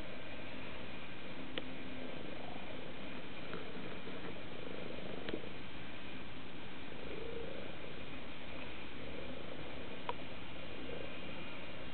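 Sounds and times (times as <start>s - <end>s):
cat purring: 0.0s - 11.9s.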